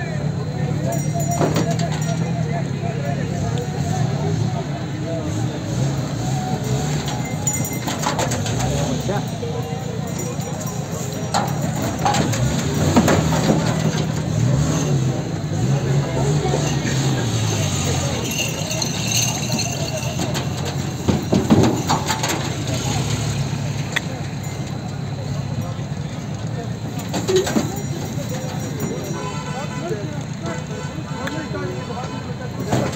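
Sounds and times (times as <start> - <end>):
people talking: 0.0 - 32.9
vehicle engine idling: 0.0 - 32.9
bull hooves knocking and scraping: 0.9 - 2.4, 6.0 - 29.5.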